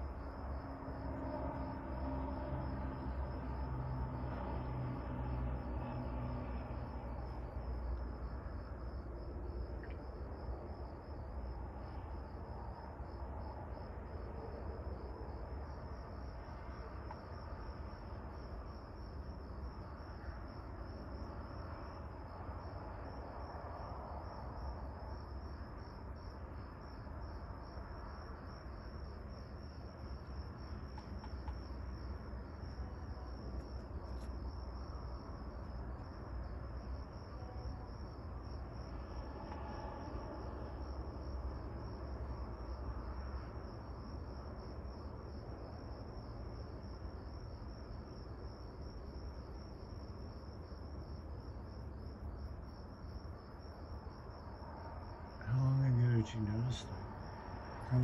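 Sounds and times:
crickets chirping: 0:00.0 - 0:58.0
low background rumble: 0:00.0 - 0:58.0.

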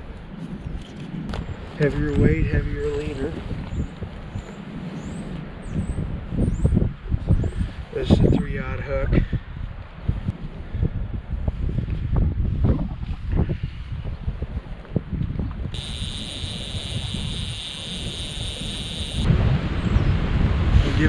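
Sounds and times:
wind buffeting microphone: 0:00.0 - 0:21.0
steady high hiss: 0:15.8 - 0:19.3
low rumble: 0:18.4 - 0:21.0.

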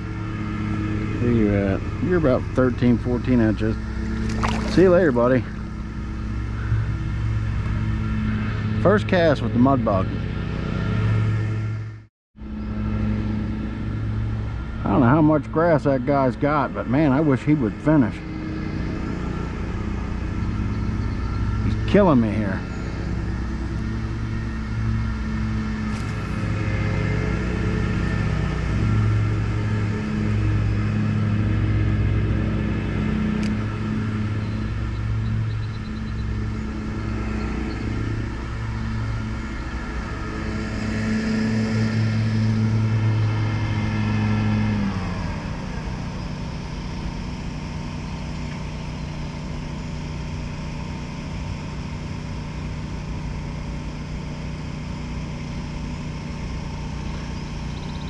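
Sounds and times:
lawn mower engine running: 0:00.0 - 0:11.9, 0:12.5 - 0:58.0.

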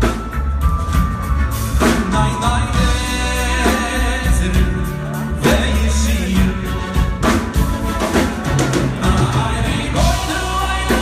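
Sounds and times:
drums: 0:00.0 - 0:11.0
keyboards: 0:00.0 - 0:11.0
man singing: 0:01.8 - 0:11.0.

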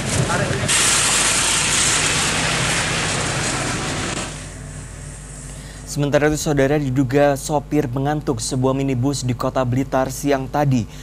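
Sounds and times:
loud rushing noise: 0:00.0 - 0:05.5
low steady hum: 0:00.0 - 0:11.0.

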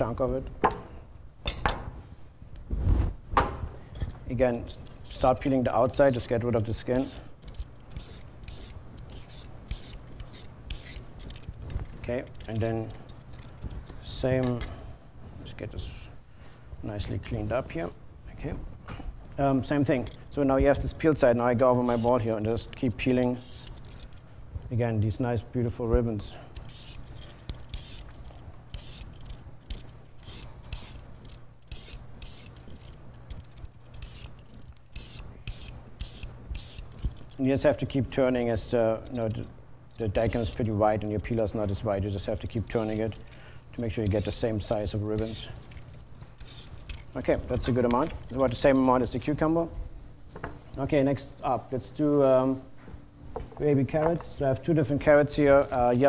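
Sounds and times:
vegetable peeler scraping radish: 0:05.0 - 0:07.3, 0:07.9 - 0:11.3, 0:21.9 - 0:22.7, 0:26.6 - 0:28.1, 0:28.7 - 0:29.2, 0:30.1 - 0:31.0, 0:31.6 - 0:32.6, 0:33.9 - 0:36.9, 0:42.4 - 0:43.2, 0:43.8 - 0:45.5, 0:46.4 - 0:47.2.

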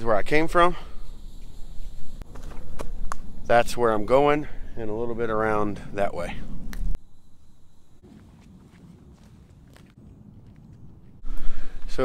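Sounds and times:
faint footsteps: 0:01.0 - 0:03.3, 0:07.9 - 0:12.0.

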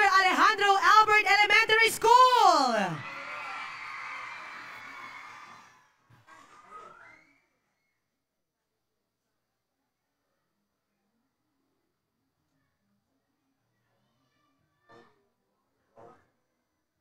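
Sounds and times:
woman speaking: 0:00.0 - 0:03.0
faint background noise: 0:00.0 - 0:17.0.

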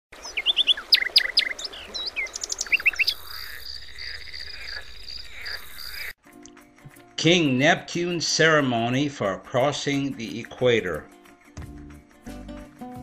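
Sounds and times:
birds chirping: 0:00.1 - 0:06.2.

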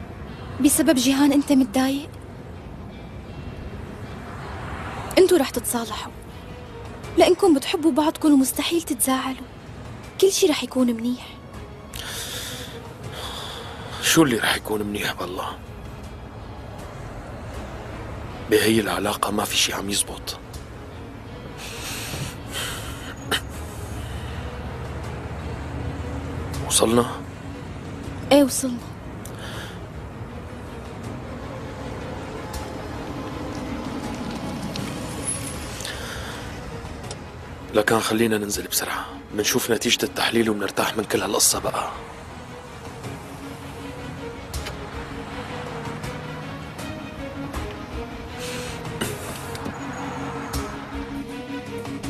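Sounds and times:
car engine and road rumble: 0:00.0 - 0:52.0.

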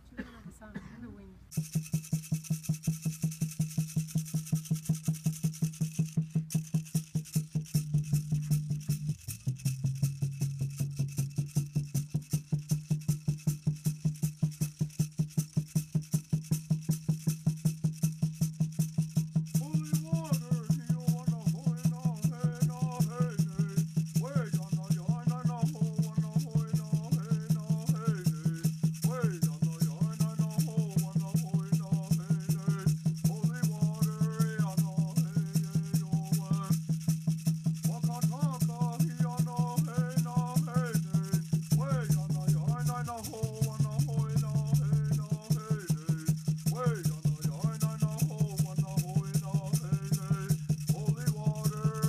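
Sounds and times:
hand rattle shaken rhythmically: 0:01.5 - 0:52.0.

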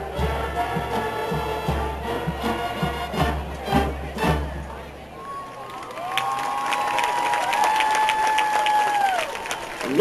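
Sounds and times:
high whoops: 0:05.2 - 0:09.4
crowd applauding and cheering: 0:05.2 - 0:10.0.

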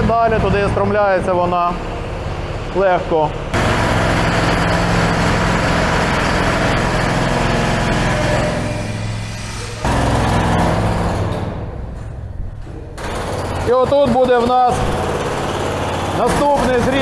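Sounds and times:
construction machinery noise: 0:00.0 - 0:17.0.

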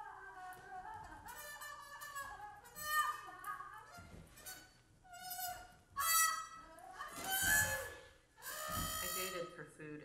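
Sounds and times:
trumpet notes: 0:07.1 - 0:09.6.

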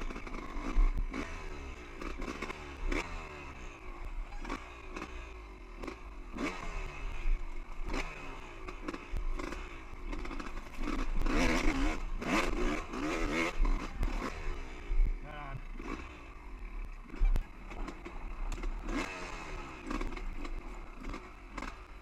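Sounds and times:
dirt bike engine revving: 0:00.0 - 0:22.0
rocks and chassis clatter: 0:16.8 - 0:22.0.

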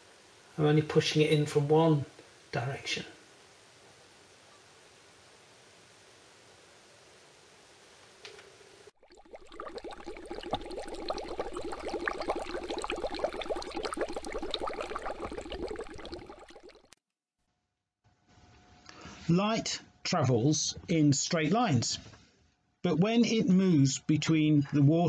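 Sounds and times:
bubbling fizzing crackle: 0:08.9 - 0:17.0.

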